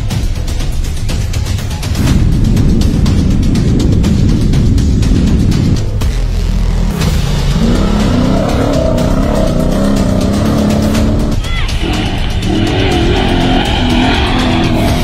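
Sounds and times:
music soundtrack: 0.0 - 15.0
truck engine revving hard: 6.5 - 15.0.

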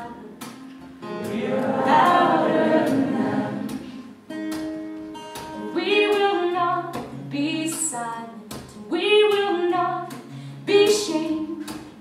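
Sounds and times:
acoustic guitar strumming: 0.0 - 12.0
crowd singing along: 1.1 - 4.2.

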